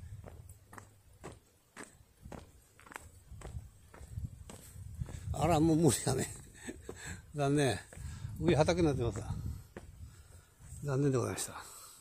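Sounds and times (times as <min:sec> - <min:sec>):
footsteps on grass: 0:00.0 - 0:11.4.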